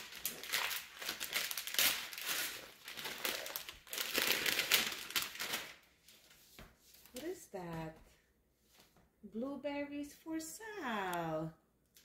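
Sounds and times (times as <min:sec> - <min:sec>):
tissue paper crinkling: 0:00.0 - 0:07.4.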